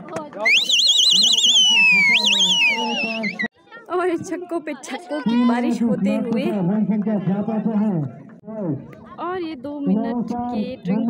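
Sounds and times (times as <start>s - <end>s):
spectators cheering: 0.4s - 3.5s
high warbling whistle: 0.5s - 3.5s.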